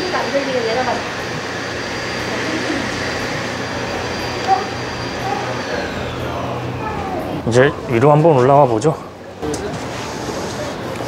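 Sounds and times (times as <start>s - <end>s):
low hum: 0.1s - 9.4s.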